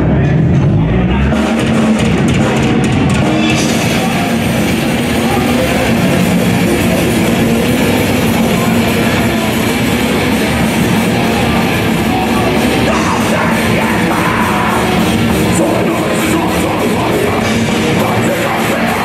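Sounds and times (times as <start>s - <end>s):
metal band playing live: 0.0s - 19.0s.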